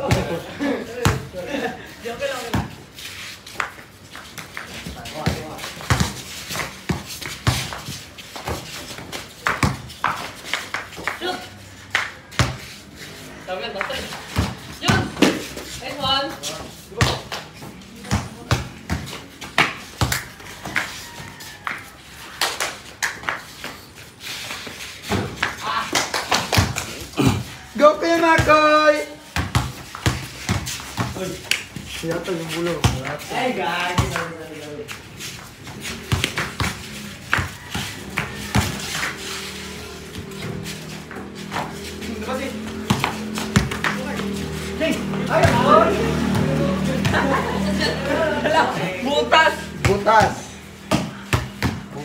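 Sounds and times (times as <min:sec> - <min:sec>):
basketball bouncing on concrete: 0:00.0 - 0:01.4, 0:02.3 - 0:02.8, 0:04.3 - 0:11.2, 0:11.9 - 0:12.7, 0:13.7 - 0:21.9, 0:25.1 - 0:25.6, 0:26.3 - 0:27.5, 0:28.2 - 0:34.8, 0:35.4 - 0:47.3, 0:49.2 - 0:52.0
players calling out: 0:35.8 - 0:52.0.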